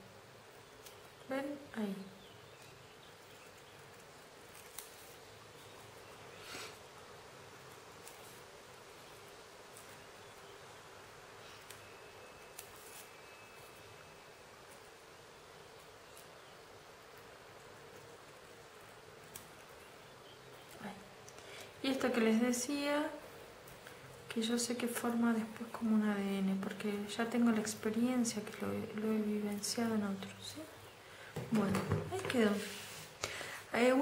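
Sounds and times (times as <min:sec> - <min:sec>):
steady low hiss: 0:00.0 - 0:34.0
scissors snipping paper: 0:03.9 - 0:05.1, 0:11.6 - 0:13.2, 0:19.2 - 0:19.7.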